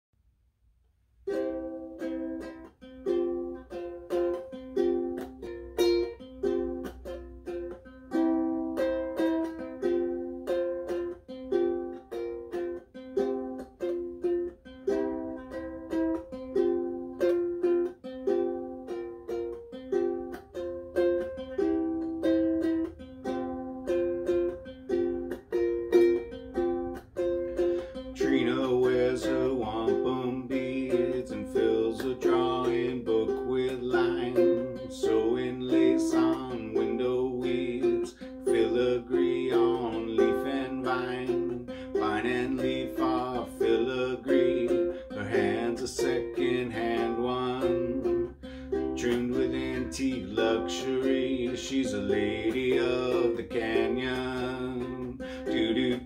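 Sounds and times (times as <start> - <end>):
ukulele plucking chords: 1.0 - 56.0.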